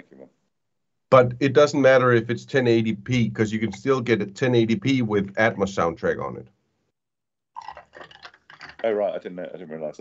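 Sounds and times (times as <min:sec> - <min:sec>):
men talking over video call: 0:00.0 - 0:07.0, 0:08.2 - 0:10.0.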